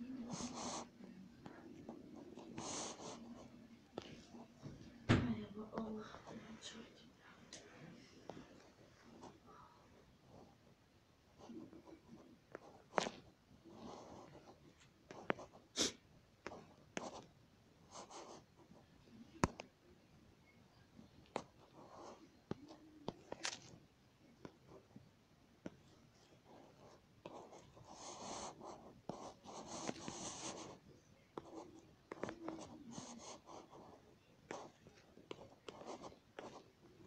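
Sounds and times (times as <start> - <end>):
stylus rubbing on touchscreen: 0.2 - 4.6, 26.9 - 30.8, 31.4 - 37.0.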